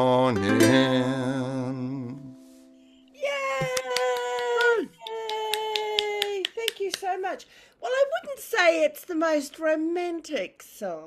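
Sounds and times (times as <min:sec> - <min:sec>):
woman cheering: 0:03.2 - 0:06.9
person speaking: 0:03.2 - 0:09.2
hand claps: 0:03.5 - 0:07.2.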